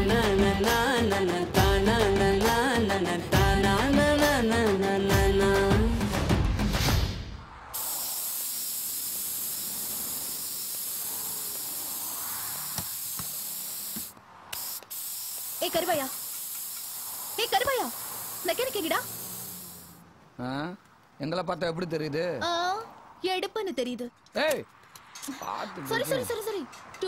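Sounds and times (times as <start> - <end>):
compressed air hissing from hose: 7.7 - 20.0.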